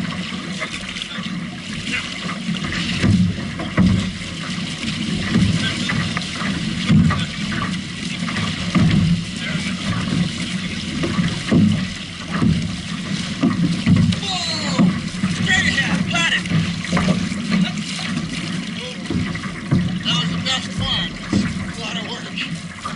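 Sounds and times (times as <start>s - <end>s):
paddle strokes: 0.0s - 22.9s
water rushing and splashing: 0.0s - 22.9s.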